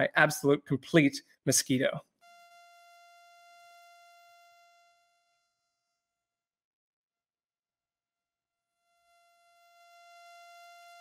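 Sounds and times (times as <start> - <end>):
high buzzing mosquito whine: 2.2 - 6.2, 8.4 - 11.0.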